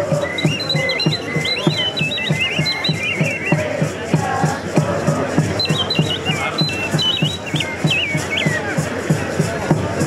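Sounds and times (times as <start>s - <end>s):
high whistle-like melody: 0.0s - 3.8s, 5.6s - 8.8s
steady drum beat: 0.0s - 10.0s.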